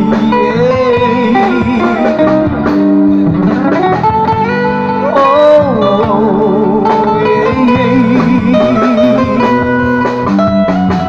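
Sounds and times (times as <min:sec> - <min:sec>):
gliding lead melody: 0:00.0 - 0:11.0
live band music: 0:00.0 - 0:11.0.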